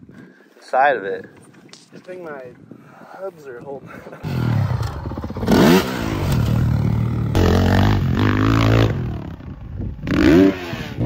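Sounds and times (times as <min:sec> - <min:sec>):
dirt bike engine revving: 0:04.2 - 0:09.4, 0:10.0 - 0:11.0.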